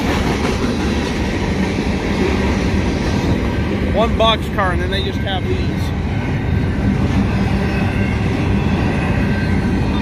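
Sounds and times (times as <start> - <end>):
freight train wheels on rails: 0.0 - 10.0.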